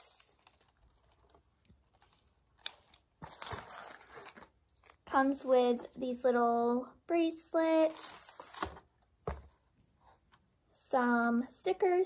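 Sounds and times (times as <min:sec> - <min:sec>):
plastic bag crinkling: 0:00.0 - 0:05.6.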